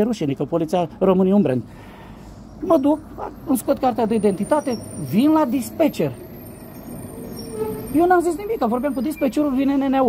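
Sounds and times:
motor vehicle rumble: 0.0s - 10.0s
faint steady tone: 1.8s - 9.8s.

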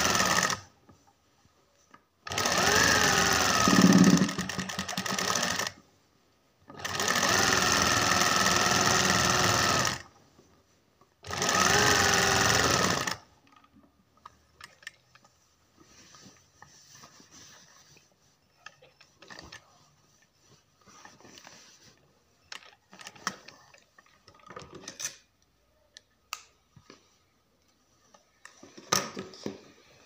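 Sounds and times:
sewing machine stitching fabric: 0.0s - 0.7s, 2.2s - 5.8s, 6.6s - 10.2s, 11.2s - 13.7s.

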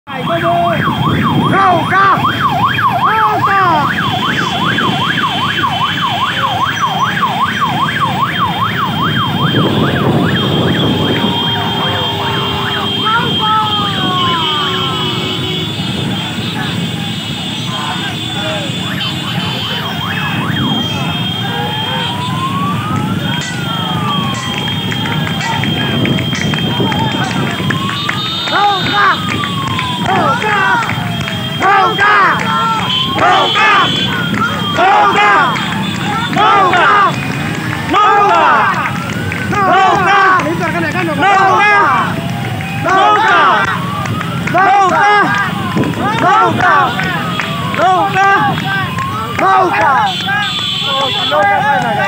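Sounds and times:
motorcycle engines: 0.1s - 52.0s
motorcycle siren wailing: 0.1s - 52.0s.

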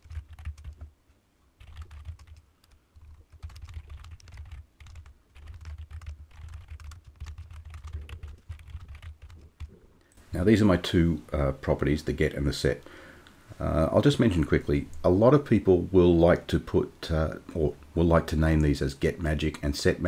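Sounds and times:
keyboard typing: 0.0s - 0.9s, 1.6s - 9.8s.

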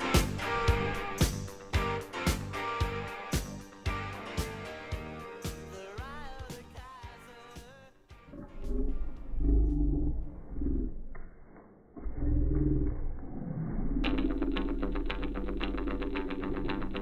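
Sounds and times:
music with quick steady beat: 0.0s - 8.3s
dogs growling: 8.3s - 11.1s.

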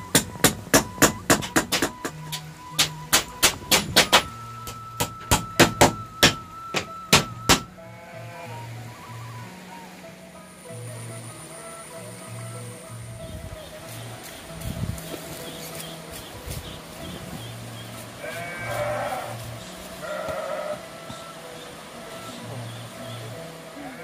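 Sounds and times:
hammer blows on bamboo floor: 0.0s - 7.8s
background music: 0.0s - 24.0s.

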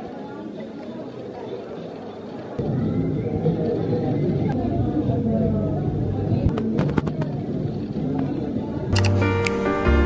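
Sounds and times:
crowd chatter: 0.0s - 10.0s
background music: 9.0s - 10.0s.

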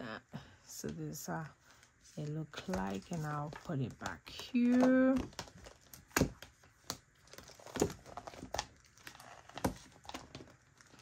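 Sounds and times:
plastic and paper crinkling: 1.2s - 11.0s.

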